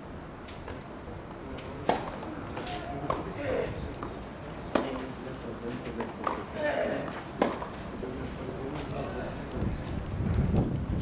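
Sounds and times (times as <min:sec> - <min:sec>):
tennis racket striking ball: 0:01.8 - 0:05.1, 0:05.9 - 0:07.8.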